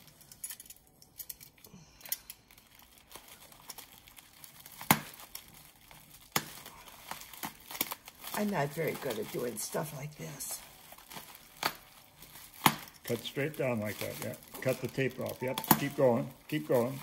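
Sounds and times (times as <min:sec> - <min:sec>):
plastic wrap crinkling: 0:00.0 - 0:17.0.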